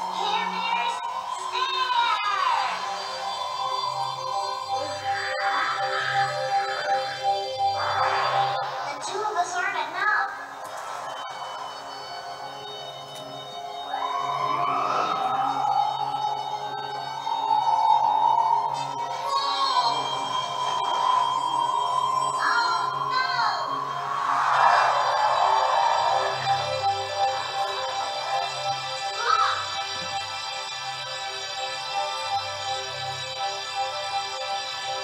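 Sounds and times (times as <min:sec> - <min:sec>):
cartoon background music: 0:00.0 - 0:10.4, 0:11.4 - 0:24.0, 0:24.6 - 0:35.0.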